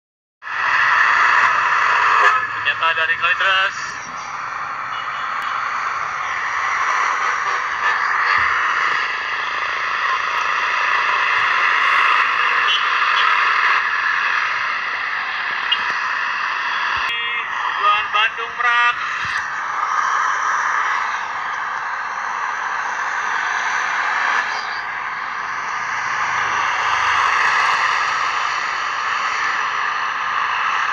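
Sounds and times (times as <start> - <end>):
bus passing road noise: 0.4 - 30.9.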